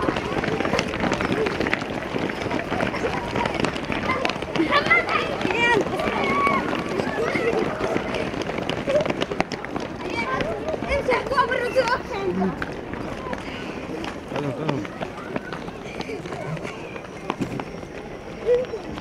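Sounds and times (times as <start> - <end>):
children shouting: 0.0 - 19.0
running footsteps: 0.0 - 19.0.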